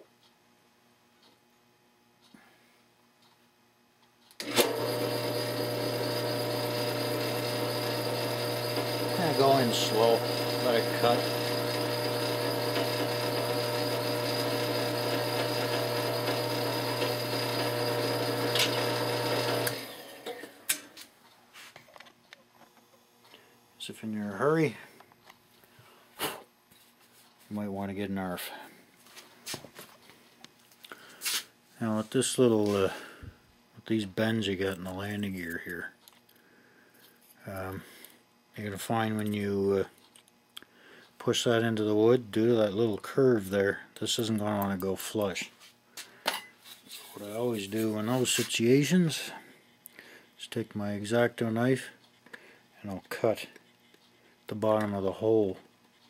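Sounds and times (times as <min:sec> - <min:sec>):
drill press motor humming: 0:04.4 - 0:20.6.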